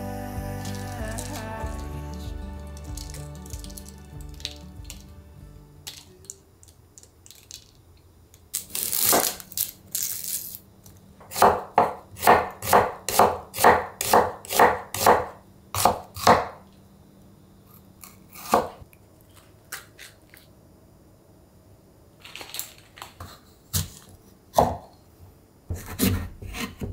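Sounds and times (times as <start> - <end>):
knife slicing onion on wooden board: 11.2 - 16.6, 18.3 - 18.8, 25.7 - 26.9.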